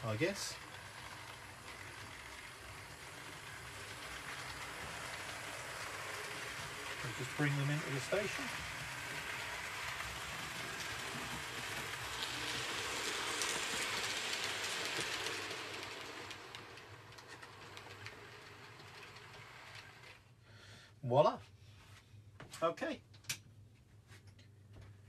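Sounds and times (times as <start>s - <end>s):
model trains rattling on track: 0.0s - 20.2s.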